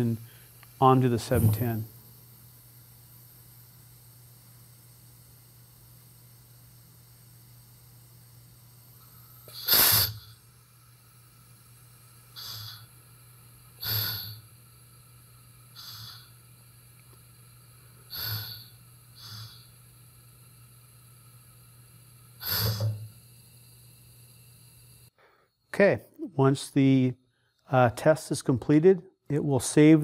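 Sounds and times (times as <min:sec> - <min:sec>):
valve venting air in hissing bursts: 0:00.0 - 0:25.2.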